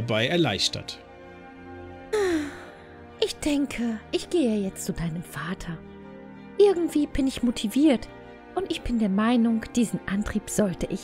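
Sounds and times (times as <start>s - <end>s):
soft background music: 0.0s - 11.0s
woman sighing: 2.1s - 3.0s.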